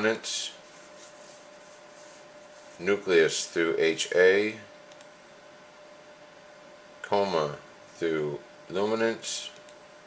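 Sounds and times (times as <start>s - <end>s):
thin constant hum: 0.0s - 10.0s.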